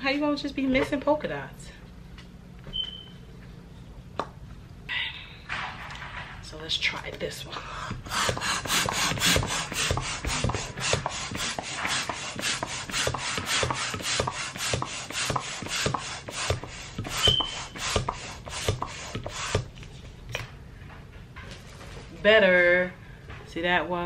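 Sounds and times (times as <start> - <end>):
hand balloon pump strokes: 7.9 - 19.7
high squeak: 17.2 - 17.7.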